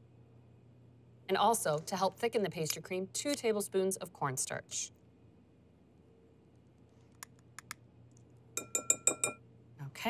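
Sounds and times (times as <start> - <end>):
teaspoon clinking glass bowl: 8.6 - 9.4.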